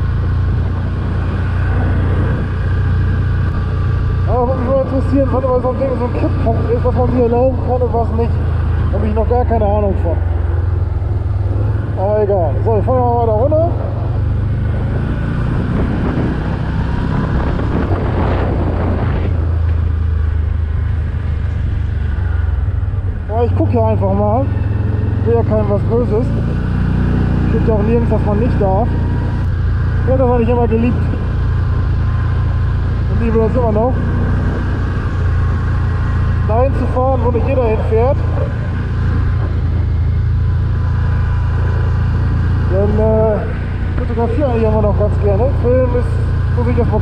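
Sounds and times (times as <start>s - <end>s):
gravel track noise: 0.0s - 47.0s
quad engine running: 0.0s - 47.0s
wind rumble: 0.0s - 47.0s.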